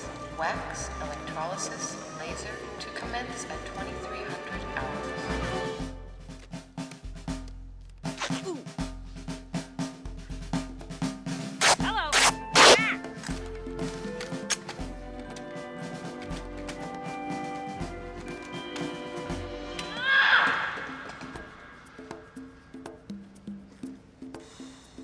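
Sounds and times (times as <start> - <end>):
film soundtrack music with drums: 0.0 - 25.0
sharp percussive hits: 11.3 - 13.4.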